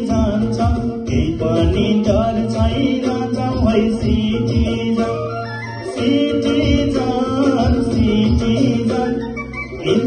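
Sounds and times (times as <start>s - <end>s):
backing music with steady beat: 0.0s - 10.0s
man singing into a microphone: 0.0s - 10.0s.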